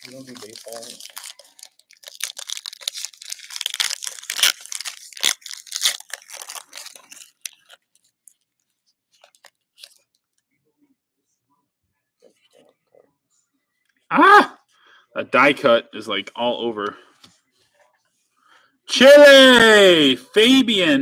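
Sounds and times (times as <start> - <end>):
cards ticking: 0.0 - 7.7
foil wrapper tearing and crinkling: 0.0 - 8.5, 9.1 - 10.1.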